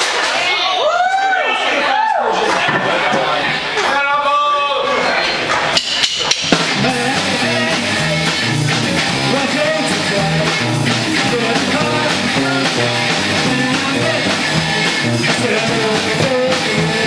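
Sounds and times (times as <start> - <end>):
drum hits: 5.8 - 17.0
rock band playing a riff: 5.8 - 17.0.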